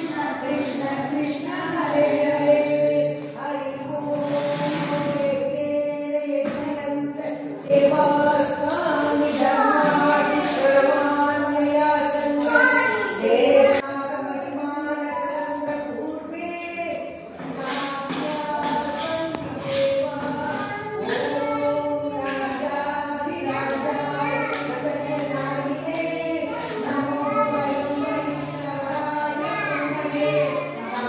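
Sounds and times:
group singing a hymn: 0.0s - 31.0s.

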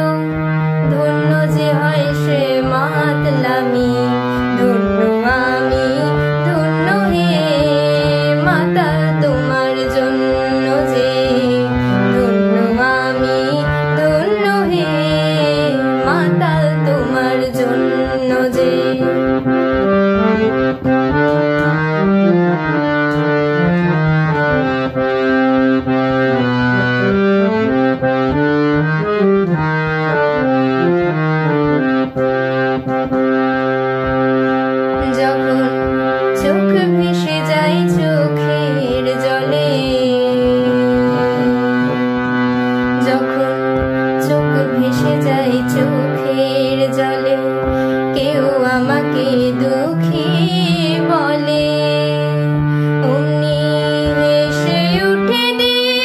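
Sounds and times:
woman singing: 0.0s - 19.8s, 34.9s - 42.2s, 42.9s - 56.0s
harmonium melody: 0.0s - 56.0s.

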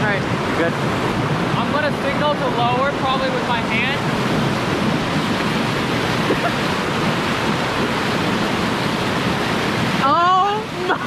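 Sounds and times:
whitewater rushing over boulders: 0.0s - 11.0s.

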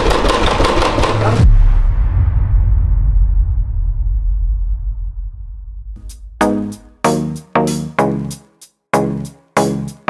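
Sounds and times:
low rumble: 1.1s - 6.4s.

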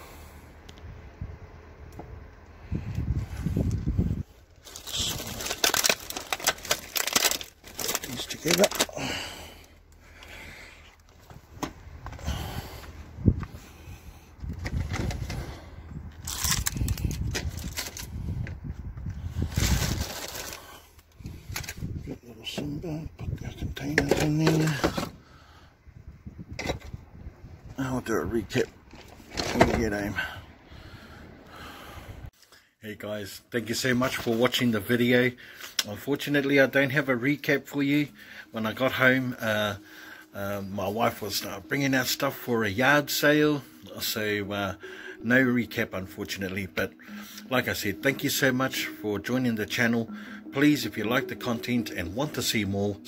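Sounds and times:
plastic bags rustling: 3.8s - 10.2s, 16.2s - 18.2s, 19.2s - 22.0s.

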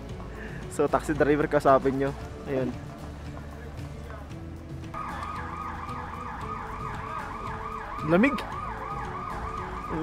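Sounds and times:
electronic siren yelping: 5.0s - 10.0s.

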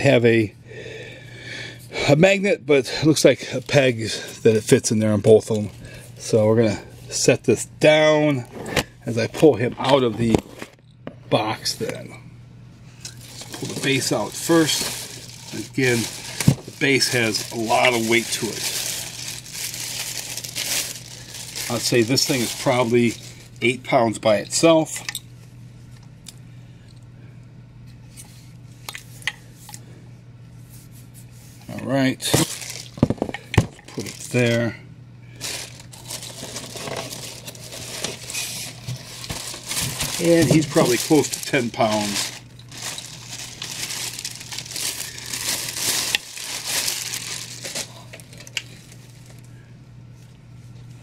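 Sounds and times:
low room hum: 0.0s - 51.0s
plastic bag crinkling: 13.0s - 24.4s, 32.2s - 34.7s, 35.4s - 49.5s.

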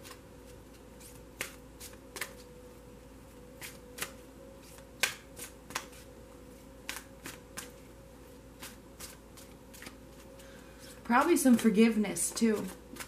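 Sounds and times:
faint steady hum: 0.0s - 13.0s
cards snapping while shuffled: 1.3s - 2.4s, 3.6s - 4.2s, 5.0s - 6.0s, 6.8s - 7.8s.

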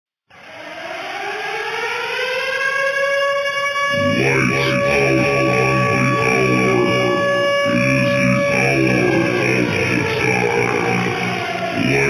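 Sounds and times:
siren winding up: 0.3s - 12.0s.

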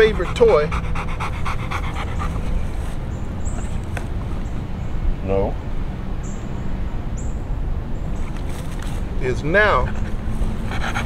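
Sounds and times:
dog panting rapidly: 0.0s - 3.0s, 9.6s - 11.0s.

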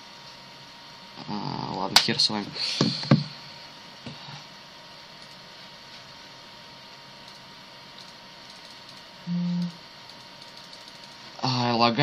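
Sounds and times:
background hiss: 0.0s - 12.0s
man humming: 1.2s - 1.8s, 9.3s - 9.8s.

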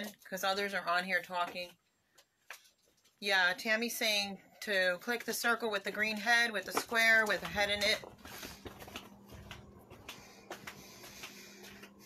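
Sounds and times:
steady low hum: 6.4s - 12.0s.

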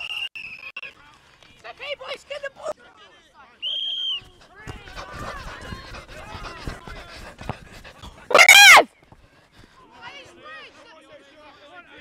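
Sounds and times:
players calling out: 4.6s - 8.9s
loud high-pitched yell: 8.3s - 8.9s.

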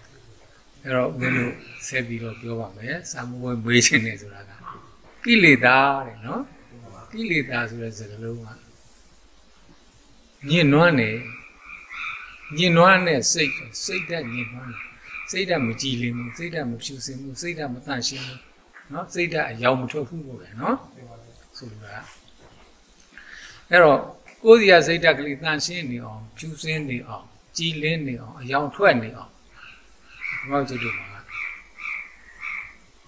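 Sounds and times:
man speaking: 0.0s - 8.7s, 10.4s - 11.4s, 12.5s - 22.2s, 23.7s - 29.4s, 30.4s - 31.3s
frogs croaking: 0.0s - 33.0s.

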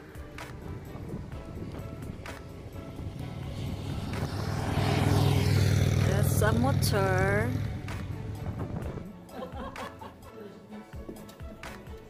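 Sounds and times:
motorcycle engine approaching: 0.0s - 9.1s.

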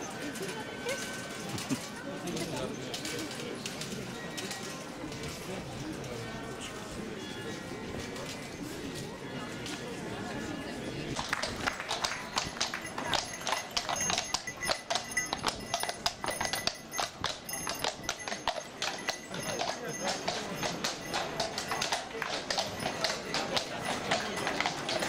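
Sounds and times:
crowd talking: 0.0s - 25.0s
horse hooves on stone paving: 11.1s - 25.0s.

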